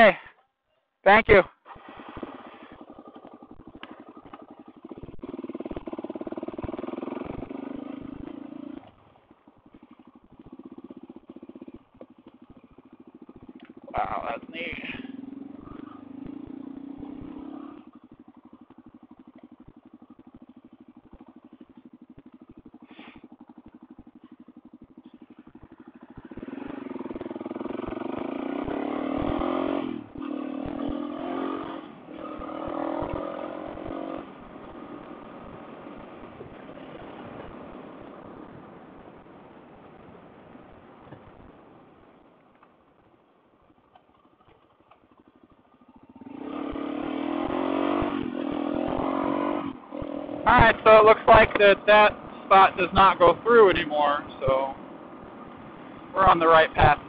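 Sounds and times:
motorcycle engine revving: 0:01.5 - 0:57.0.

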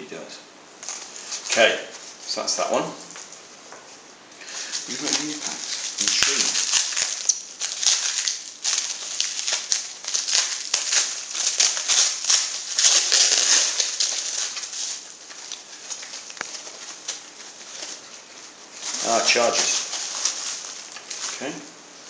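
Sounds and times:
plastic packaging crinkling: 0:00.8 - 0:03.6, 0:04.4 - 0:22.0.

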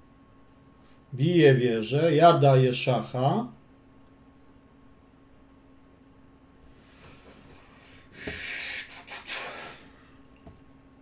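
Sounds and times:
man breathing out heavily: 0:06.9 - 0:10.3.

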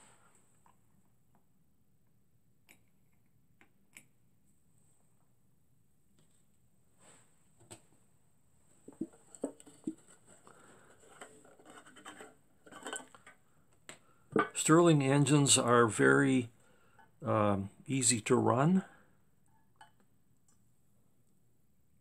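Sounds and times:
faint handling noise: 0:06.1 - 0:14.8.

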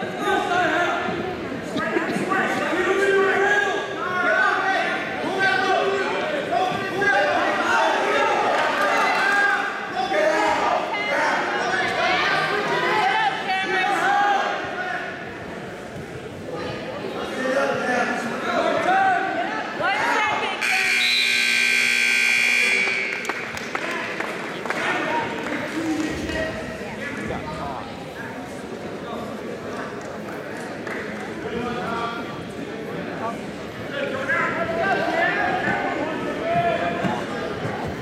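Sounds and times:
scoreboard buzzer tone: 0:20.6 - 0:23.2.

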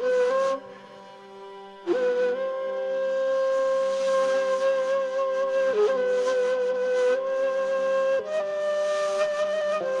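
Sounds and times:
flute-like wind instrument: 0:00.0 - 0:10.0.

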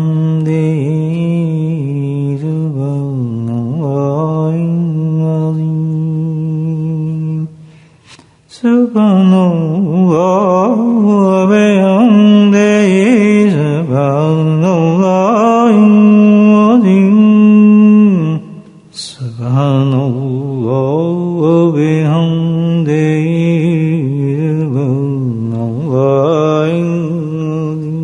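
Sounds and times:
person chanting unaccompanied: 0:00.0 - 0:07.6, 0:08.5 - 0:28.0.

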